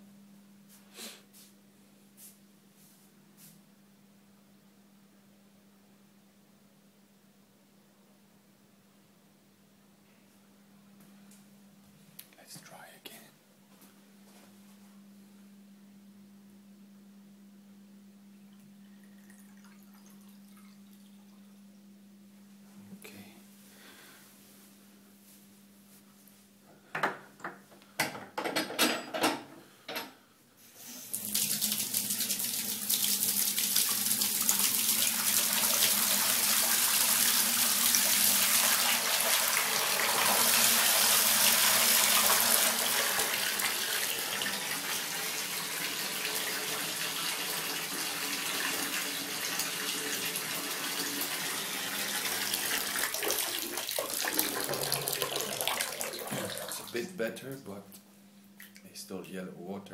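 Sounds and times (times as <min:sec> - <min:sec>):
tap running into full bathtub: 0:31.1 - 0:57.0.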